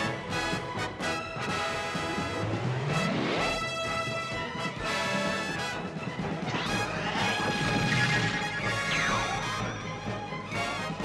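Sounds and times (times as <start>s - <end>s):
orchestral cartoon music: 0.0s - 11.0s
swooping sound effect: 6.4s - 9.8s.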